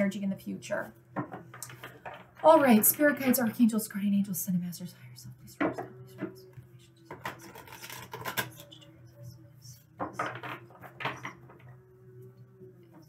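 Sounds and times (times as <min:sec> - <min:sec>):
cards being shuffled by hand: 0:07.1 - 0:08.7.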